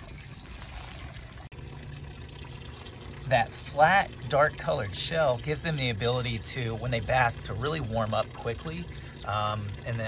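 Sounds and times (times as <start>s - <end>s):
running water trickling: 0.0s - 10.0s.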